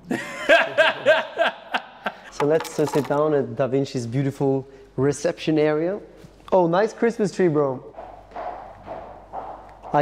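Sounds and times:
high-heeled footsteps on hard floor: 7.9s - 10.0s.

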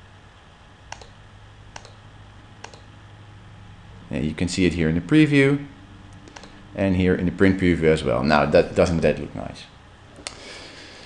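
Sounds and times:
faint low hum: 0.0s - 11.0s
computer mouse clicks: 0.9s - 1.2s, 1.8s - 2.0s, 2.6s - 2.9s, 6.2s - 6.6s.

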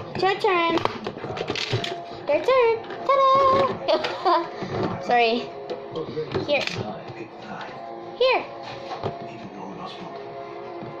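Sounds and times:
faint background music: 0.0s - 11.0s
child speaking: 0.2s - 0.8s, 2.3s - 3.8s, 8.2s - 8.5s.

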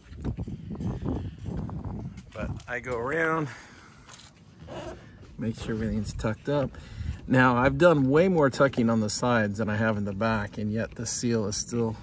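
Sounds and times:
footsteps on pavement: 0.0s - 12.0s.

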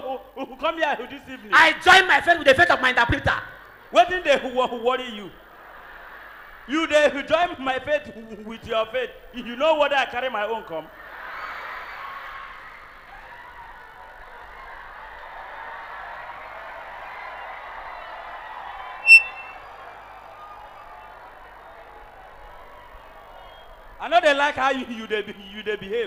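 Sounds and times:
audience laughing and cheering: 5.4s - 6.7s, 10.9s - 16.2s
shrill high-pitched tone: 19.0s - 19.6s.

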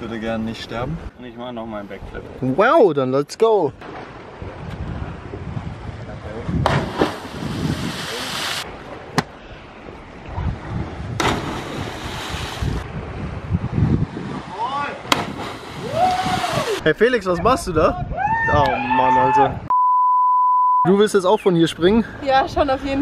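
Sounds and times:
wind rushing over microphone: 4.3s - 19.7s
sea surf: 6.2s - 16.9s.

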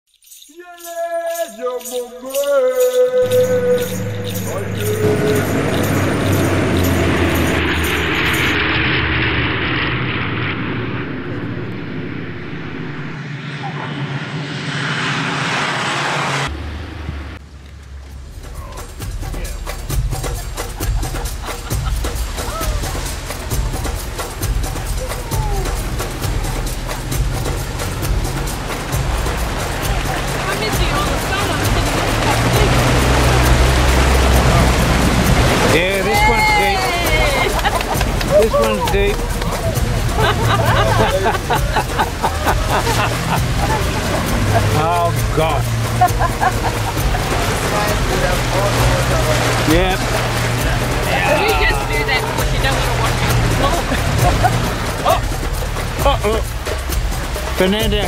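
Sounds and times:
vehicle ploughing through water: 3.2s - 11.8s, 16.0s - 58.0s
vehicle engine running: 3.2s - 21.8s, 25.7s - 58.0s
light aircraft propeller engine: 3.3s - 19.1s, 19.8s - 57.8s.

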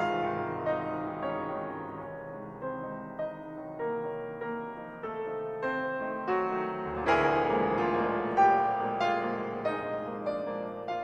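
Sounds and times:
two pianos playing classical music: 0.0s - 11.0s.

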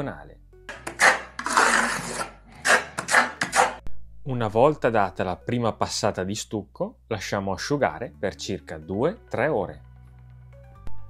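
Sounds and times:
trowel scraping filler on wall: 0.7s - 3.8s.

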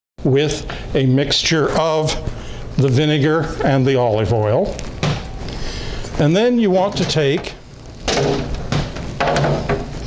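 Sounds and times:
sharp knocks: 8.1s - 9.9s.

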